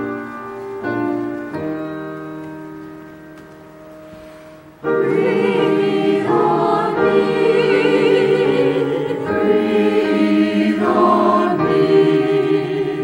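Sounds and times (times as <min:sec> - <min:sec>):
piano chord: 0:00.0 - 0:13.0
church choir singing: 0:04.8 - 0:13.0.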